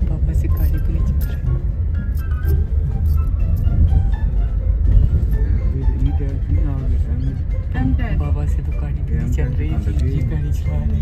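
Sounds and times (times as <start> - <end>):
car engine rumble in cabin: 0.0 - 11.0
music: 0.0 - 11.0.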